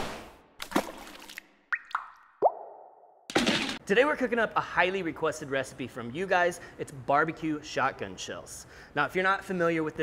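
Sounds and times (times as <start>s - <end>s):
liquid drip plops: 0.7s - 2.9s.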